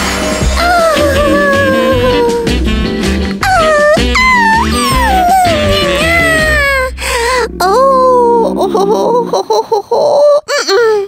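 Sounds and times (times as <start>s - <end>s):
background music: 0.0s - 9.6s
wavering whimper: 0.6s - 10.4s
cartoon character gliding vocal sounds: 0.6s - 10.5s.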